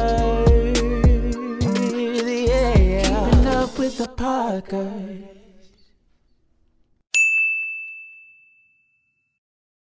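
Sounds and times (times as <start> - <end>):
notification bell ding: 7.2 - 9.4.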